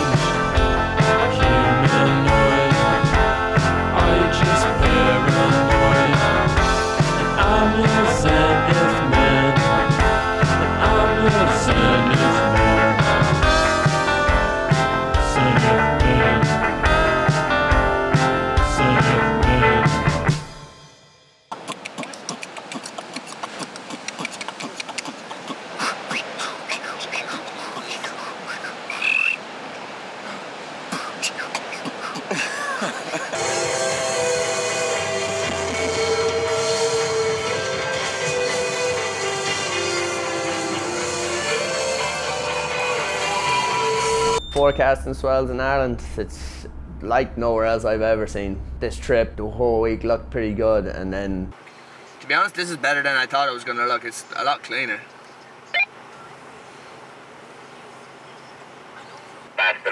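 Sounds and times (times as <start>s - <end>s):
steady wind: 21.5s - 59.9s.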